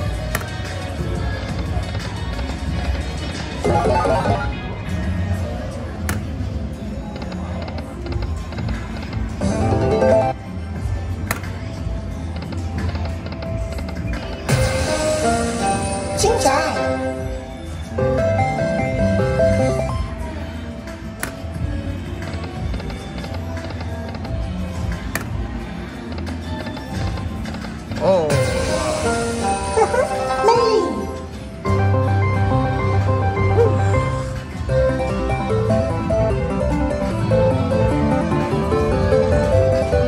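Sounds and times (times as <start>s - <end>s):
slot machine reel spin loop: 3.6s - 4.6s, 9.4s - 10.4s, 18.0s - 19.9s.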